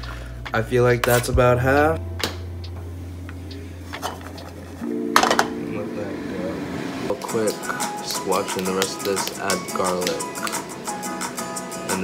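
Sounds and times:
low steady hum: 0.0s - 8.0s
background music: 0.0s - 12.0s.

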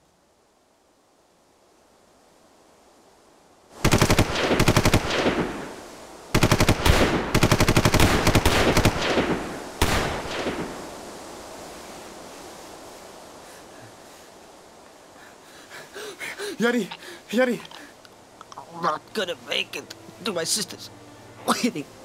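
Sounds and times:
automatic gunfire bursts: 3.8s - 5.6s, 6.4s - 10.6s.

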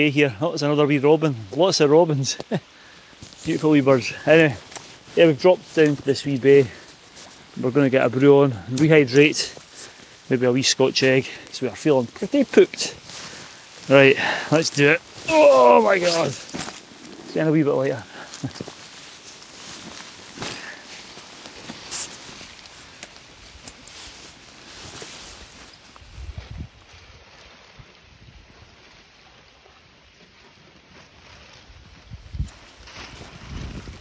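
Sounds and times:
outdoor ambience: 0.0s - 34.0s
wind gusts on microphone: 25.9s - 28.8s, 31.7s - 34.0s.

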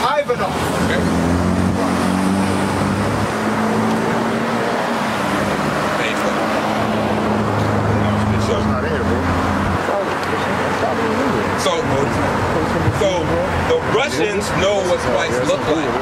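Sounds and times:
road traffic: 0.0s - 16.0s
vehicle engine droning: 0.0s - 16.0s.

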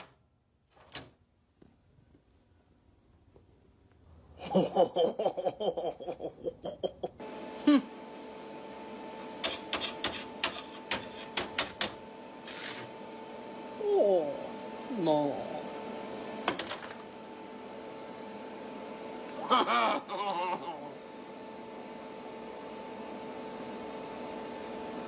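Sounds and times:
arc welder humming: 3.9s - 25.0s
person laughing: 4.4s - 8.0s, 19.3s - 21.0s.

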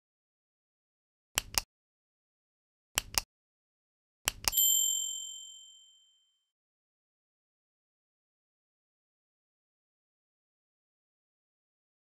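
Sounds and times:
double mouse click: 1.4s - 1.7s, 3.0s - 3.3s
bright bell ding: 4.5s - 6.3s.

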